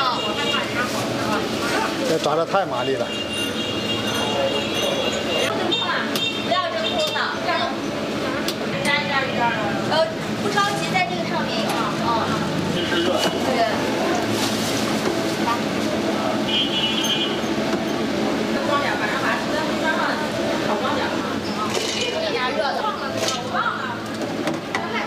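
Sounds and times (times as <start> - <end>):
people chattering: 0.0 - 25.0.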